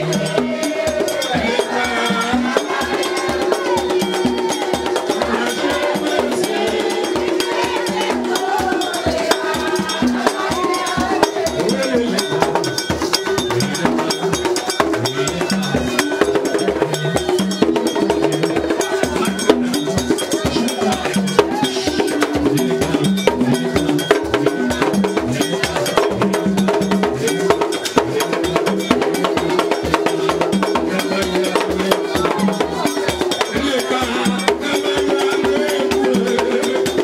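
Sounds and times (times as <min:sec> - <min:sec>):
drums beating: 0:00.0 - 0:37.0
voices singing: 0:00.0 - 0:37.0
struck metal bell: 0:09.7 - 0:34.8.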